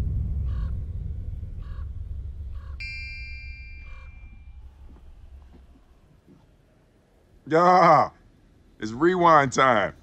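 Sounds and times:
low rumble: 0:00.0 - 0:06.3
bird cawing: 0:00.4 - 0:00.8, 0:01.6 - 0:03.1, 0:03.8 - 0:06.2
bright chime: 0:02.8 - 0:04.6.

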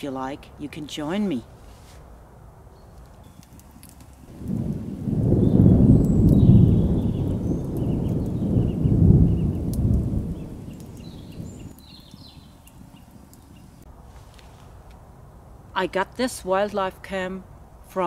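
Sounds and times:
faint high chirps and clicks: 0:02.9 - 0:04.2, 0:06.0 - 0:13.9
deep thunder-like rumble: 0:04.3 - 0:12.5.

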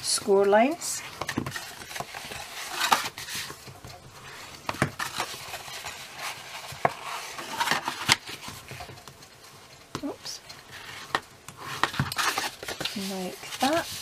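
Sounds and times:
bone folder scraping paper: 0:10.7 - 0:14.0.

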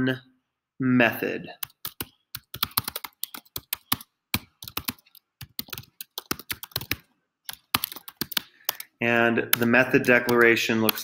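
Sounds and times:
computer keyboard typing: 0:01.6 - 0:11.0.

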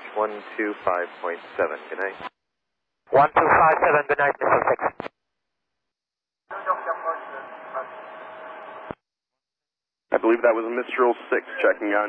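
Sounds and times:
muffled radio speech: 0:03.1 - 0:05.1, 0:06.5 - 0:08.2, 0:10.1 - 0:12.0.

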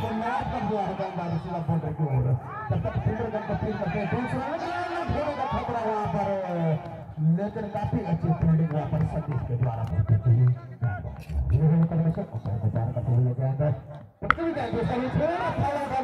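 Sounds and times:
crowd chatter: 0:00.0 - 0:16.0
men talking and calling out: 0:00.0 - 0:16.0.

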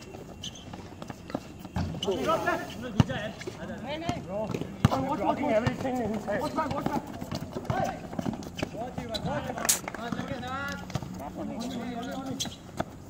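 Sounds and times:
sneakers running on concrete: 0:00.0 - 0:13.0
basketball bouncing on concrete: 0:02.9 - 0:03.3, 0:03.9 - 0:13.0.

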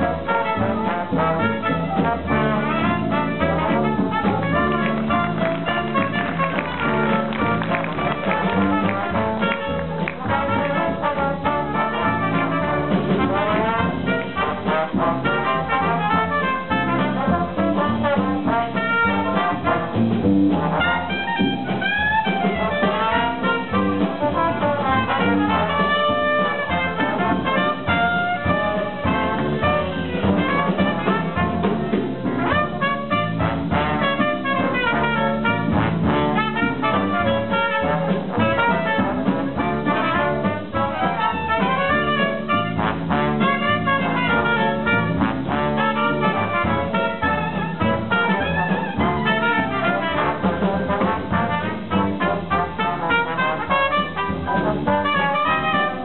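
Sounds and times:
dixieland jazz band playing: 0:00.0 - 0:56.0.

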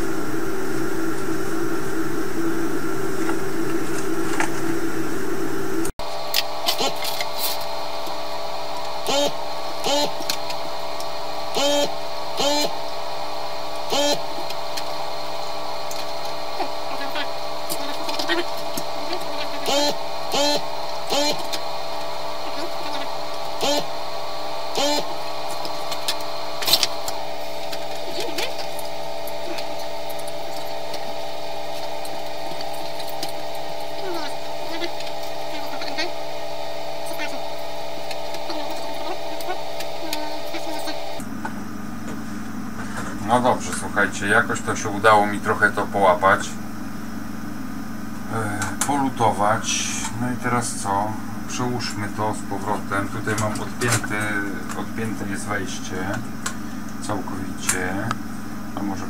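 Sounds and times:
steady electrical hum: 0:00.0 - 0:59.0.

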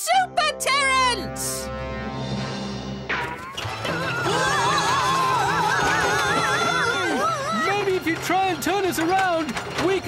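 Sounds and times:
cartoon music: 0:03.3 - 0:08.0
high wavering cries: 0:03.6 - 0:07.9.

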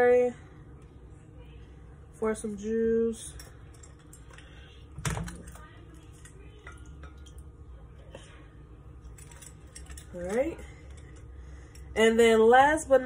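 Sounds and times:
juice dripping: 0:03.8 - 0:08.3.

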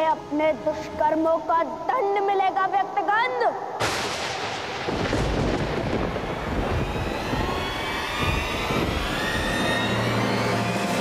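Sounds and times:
loud rushing rumble: 0:04.5 - 0:11.0
rising whine: 0:05.2 - 0:11.0.

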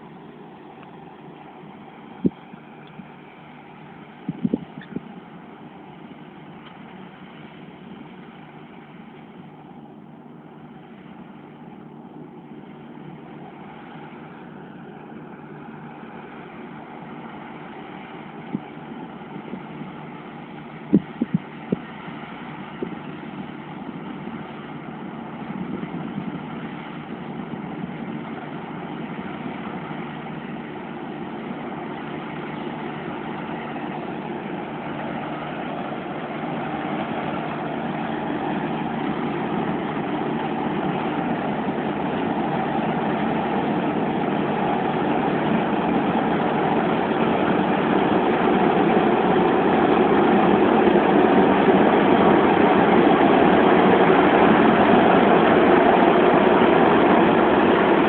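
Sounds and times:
combine harvester droning: 0:00.0 - 0:58.0.

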